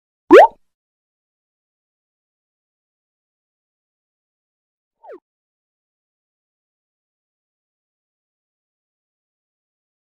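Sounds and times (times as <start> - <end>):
rising pop sound effect: 0.3 - 0.6.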